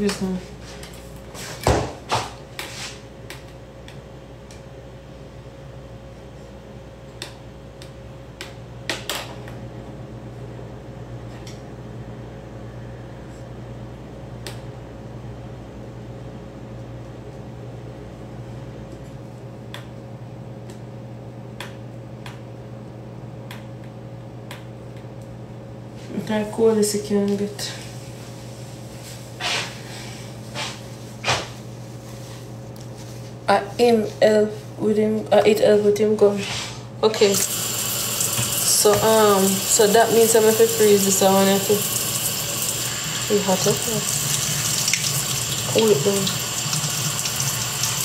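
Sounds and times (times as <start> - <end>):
mechanical fan hum: 0.0 - 48.0.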